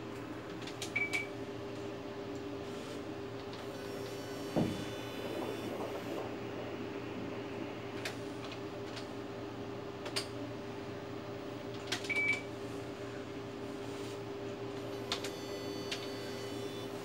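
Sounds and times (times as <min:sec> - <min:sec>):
ultrasound scanner humming: 0:03.6 - 0:08.3, 0:14.8 - 0:17.0
dull thump: 0:04.5 - 0:06.3.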